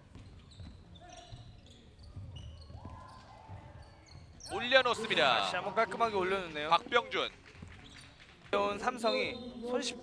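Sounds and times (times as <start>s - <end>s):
basketball bouncing on wooden floor: 0.0s - 4.5s
sneaker squeaks: 0.0s - 5.6s, 6.8s - 9.6s.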